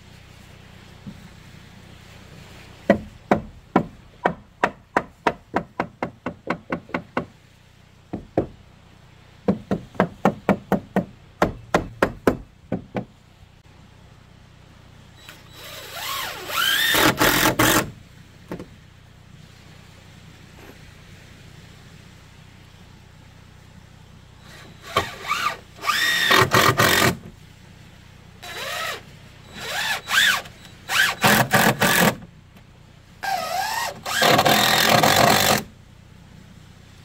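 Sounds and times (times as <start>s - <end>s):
hammer driving nails into wood: 34.0s - 35.6s.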